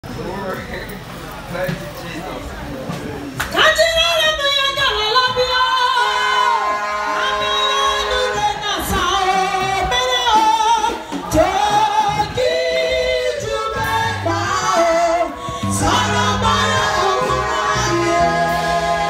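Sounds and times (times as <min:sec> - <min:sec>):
other voices singing: 0:05.2 - 0:19.0.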